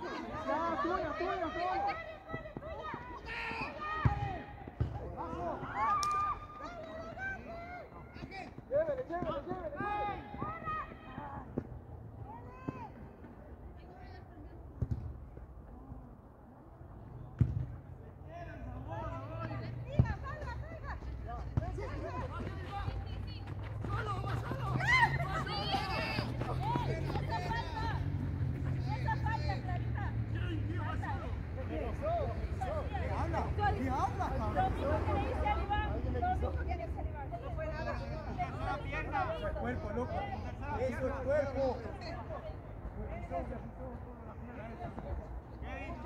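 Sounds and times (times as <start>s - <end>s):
players calling and shouting: 0.0s - 46.0s
ball being kicked: 14.8s - 15.2s, 17.3s - 17.8s.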